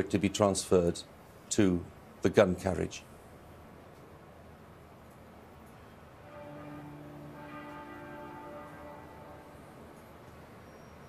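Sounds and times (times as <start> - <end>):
faint large bell toll: 6.2 - 11.0.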